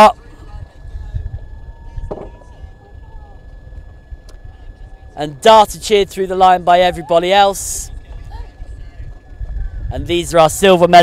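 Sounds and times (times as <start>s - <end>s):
distant crowd shouting and cheering: 0.0s - 11.0s
low uneven rumble: 0.1s - 11.0s.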